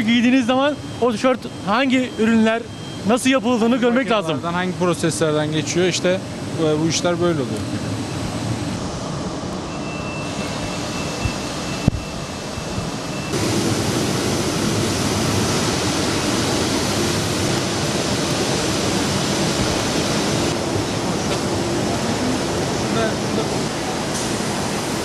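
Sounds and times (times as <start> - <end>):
factory machinery hiss and hum: 0.0 - 25.0
faint high whistle: 9.7 - 12.2.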